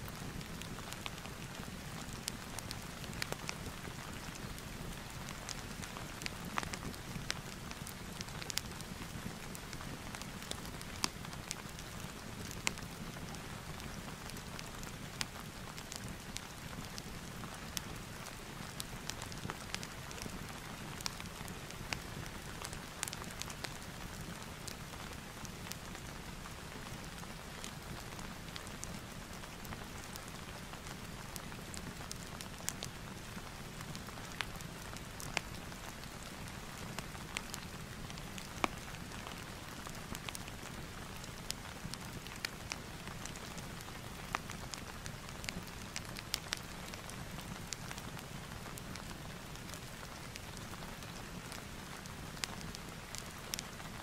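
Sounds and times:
crackling fireplace: 0:00.0 - 0:54.0
steady rain: 0:00.0 - 0:54.0.

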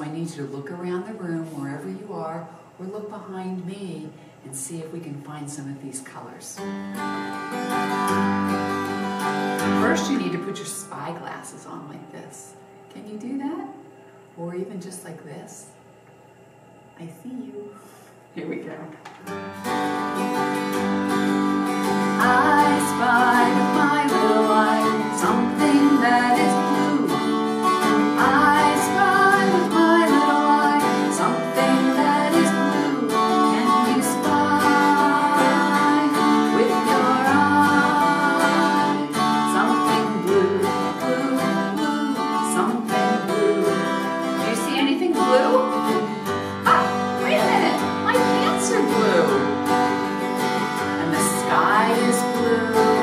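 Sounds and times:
acoustic guitar strumming: 0:06.6 - 0:14.3, 0:19.0 - 0:53.0.

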